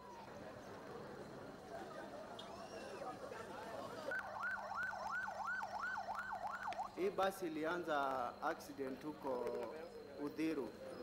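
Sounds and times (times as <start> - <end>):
ambulance siren wailing: 4.1 - 7.0.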